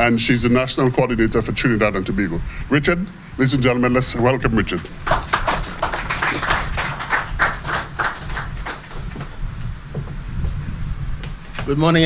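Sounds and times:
audience clapping: 4.9s - 9.4s.

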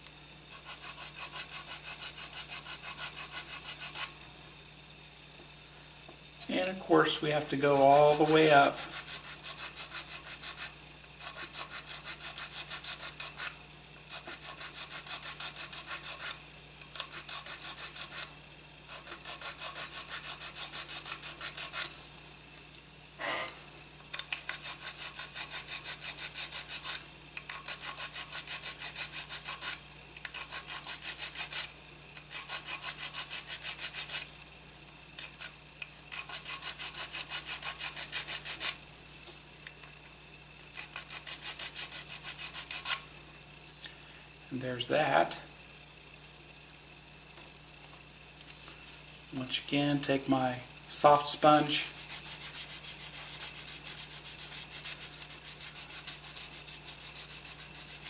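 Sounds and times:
sanding stick rubbing on plastic: 0.5s - 4.1s, 7.1s - 16.4s, 17.0s - 18.3s, 18.9s - 21.9s, 24.2s - 31.7s, 32.3s - 34.3s, 36.1s - 38.8s, 40.8s - 43.0s, 48.3s - 49.6s, 50.9s - 58.0s.

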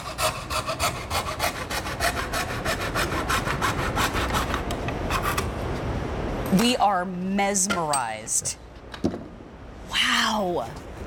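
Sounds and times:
hand saw cutting bamboo: 0.0s - 5.4s.

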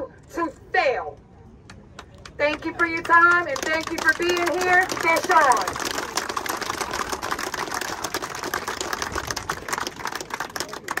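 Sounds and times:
crowd applauding: 2.0s - 11.0s.

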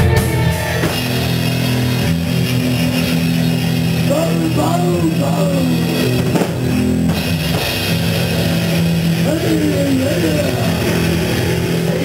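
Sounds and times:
distorted electric bass and guitar chord: 0.0s - 12.0s
voice calling into microphone: 4.1s - 6.2s, 9.2s - 11.0s.

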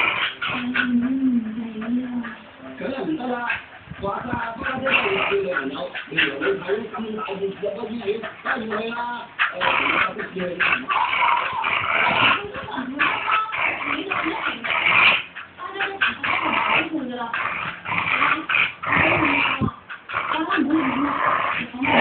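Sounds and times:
puppy whining: 0.0s - 2.6s, 3.2s - 22.0s
puppy growling: 0.0s - 22.0s.

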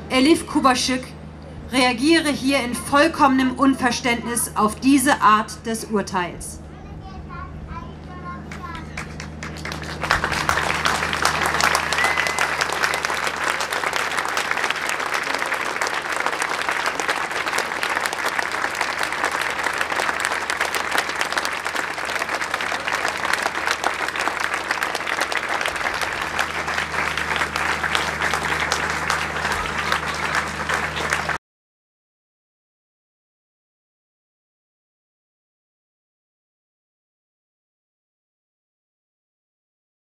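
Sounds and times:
faint low hum: 0.0s - 31.4s
crowd applauding: 8.5s - 31.4s.

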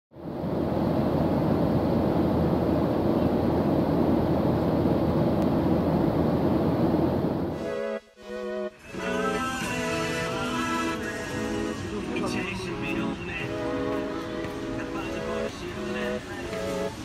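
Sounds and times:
jet airliner cabin noise: 0.2s - 7.9s, 8.9s - 17.0s.

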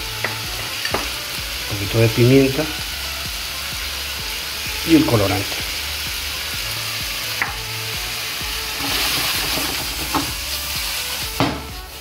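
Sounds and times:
rice and vegetables sizzling in oil: 0.0s - 12.0s.

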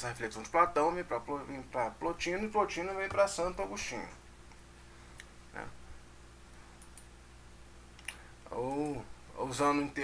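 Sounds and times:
low electrical hum: 0.0s - 10.0s
faint short clicks: 8.0s - 9.0s.

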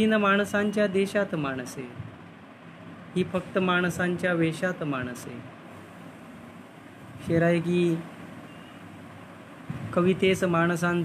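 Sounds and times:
low hiss: 0.0s - 11.0s.

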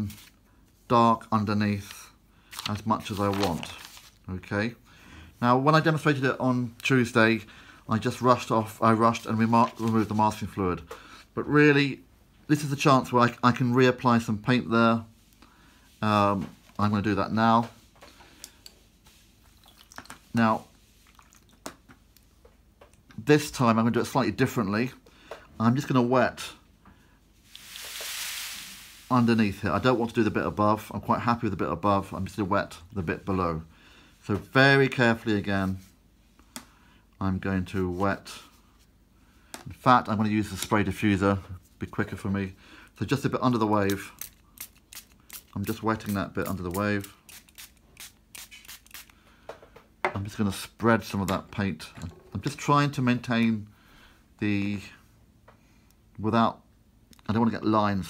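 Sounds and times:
spray bottle misting hisses: 27.5s - 29.1s, 43.9s - 49.2s.

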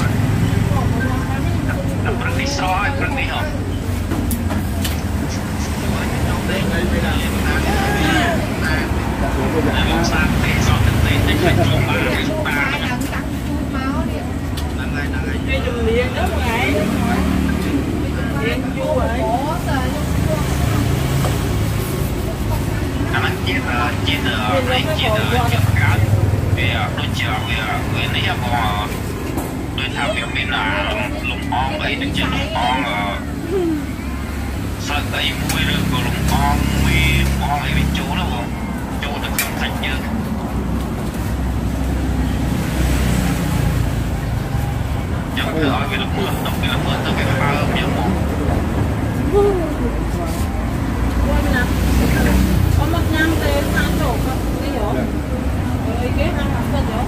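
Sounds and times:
people talking: 0.0s - 40.5s, 42.8s - 57.0s.

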